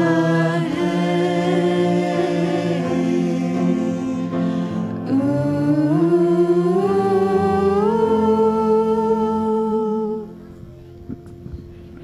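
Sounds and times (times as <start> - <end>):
voices singing a hymn: 0.0 - 10.5.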